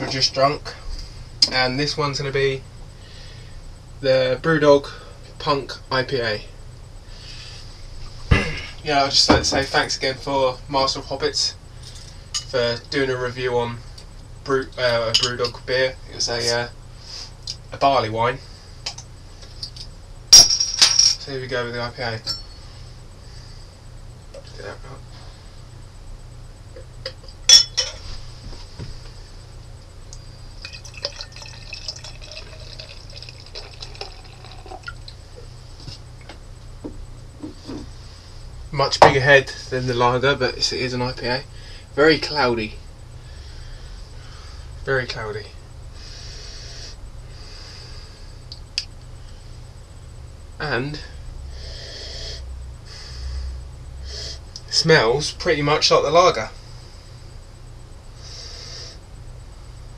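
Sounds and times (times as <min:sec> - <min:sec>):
low hum: 0:00.0 - 0:59.9.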